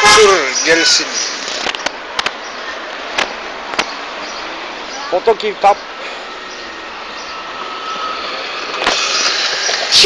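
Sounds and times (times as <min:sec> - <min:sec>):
road and traffic noise: 0:00.0 - 0:10.0.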